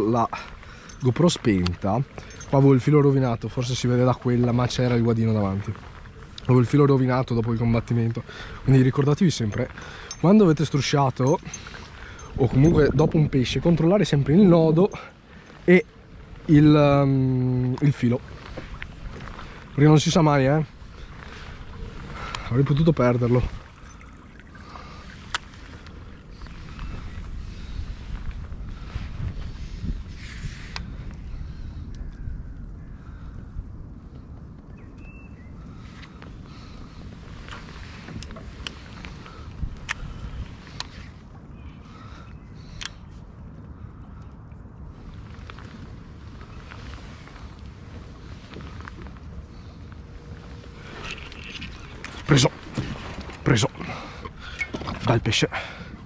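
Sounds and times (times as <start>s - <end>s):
wind rumble on microphone: 0.0s - 56.0s.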